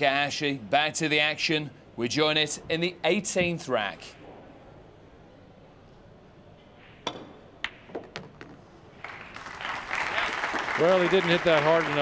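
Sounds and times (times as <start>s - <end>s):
audience applause: 9.0s - 12.0s.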